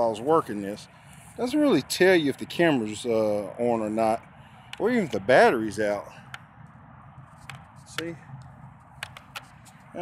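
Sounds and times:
plastic transmitter clicks: 9.0s - 9.5s.

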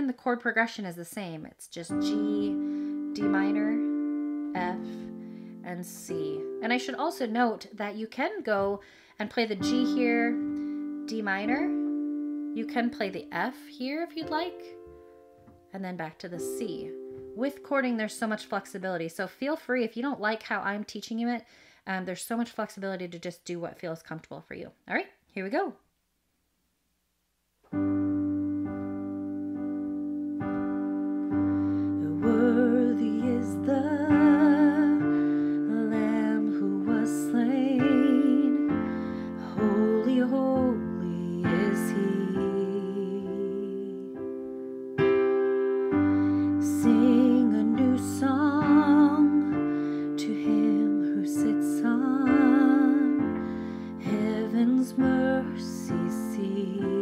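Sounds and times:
piano chord: 1.9s - 8.8s, 9.4s - 18.8s, 27.7s - 57.0s
woman singing with vibrato: 32.0s - 44.2s, 46.5s - 53.3s, 54.0s - 57.0s.

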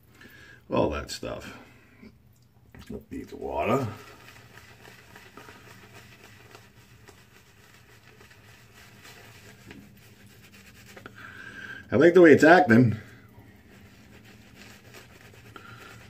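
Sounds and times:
shaving brush scratching lather: 3.2s - 11.4s, 13.4s - 16.0s.

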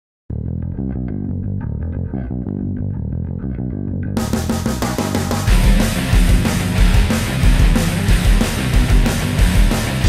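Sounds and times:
bass guitar plucked notes: 0.3s - 10.0s.

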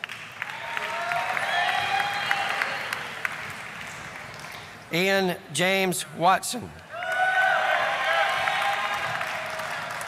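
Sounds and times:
audience applauding: 0.0s - 4.8s, 7.0s - 10.0s
cheers: 0.4s - 3.3s, 6.9s - 10.0s.

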